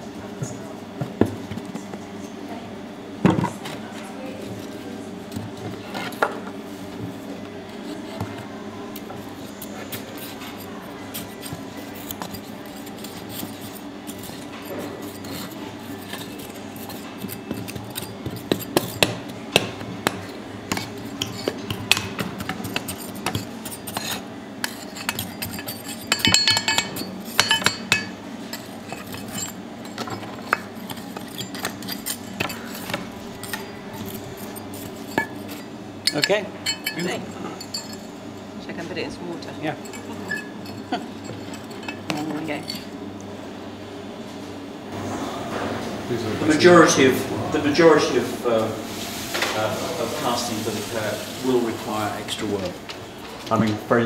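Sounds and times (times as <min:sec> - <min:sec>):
steady low hum: 0:00.0 - 0:50.3
tongs scraping in sand: 0:09.2 - 0:19.0, 0:22.4 - 0:27.4, 0:28.5 - 0:38.1.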